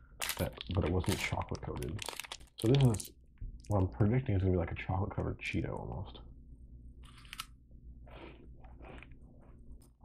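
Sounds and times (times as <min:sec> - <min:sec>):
crisp crunch of biting snack: 0:00.2 - 0:03.1
soft chewing: 0:07.0 - 0:10.0.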